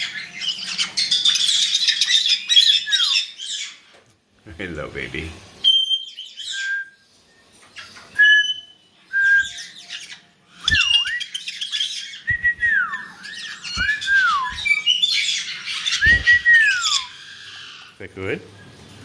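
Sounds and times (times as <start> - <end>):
parrots squawking and whistling: 0.0 - 4.0, 5.6 - 19.0.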